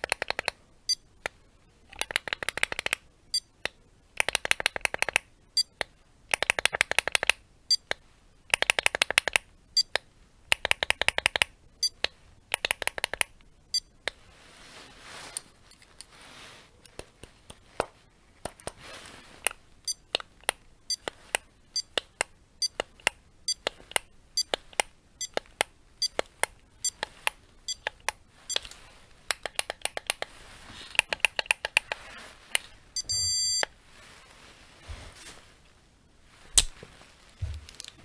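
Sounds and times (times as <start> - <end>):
electronic beep: 33.0 - 33.6.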